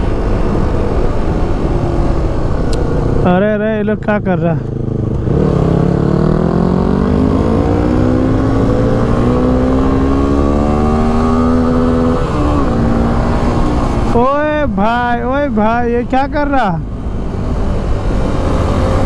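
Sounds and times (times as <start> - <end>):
wind rush: 0.0 - 3.3
motorcycle engine accelerating: 0.0 - 14.2.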